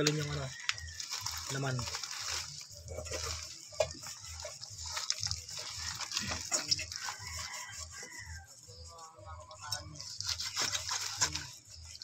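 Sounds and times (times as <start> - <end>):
wet tearing and squelching: 0.0 - 7.8
plastic sheet crackling: 0.0 - 8.2, 9.5 - 12.0.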